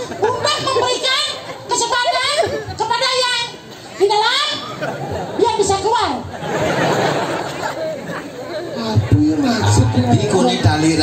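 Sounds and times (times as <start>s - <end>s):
crowd chatter: 0.0s - 11.0s
indistinct talking: 0.0s - 11.0s.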